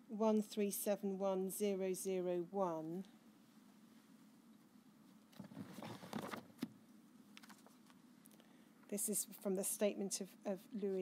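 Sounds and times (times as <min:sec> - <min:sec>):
paper rustling: 0:05.2 - 0:06.7, 0:07.4 - 0:08.0.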